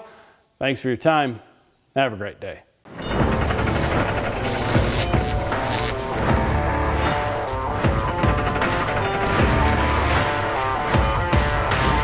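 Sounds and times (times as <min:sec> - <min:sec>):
music: 0:02.9 - 0:12.0.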